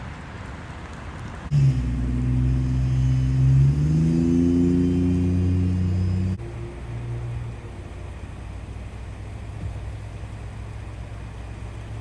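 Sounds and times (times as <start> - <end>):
vehicle engine revving: 1.5 - 12.0.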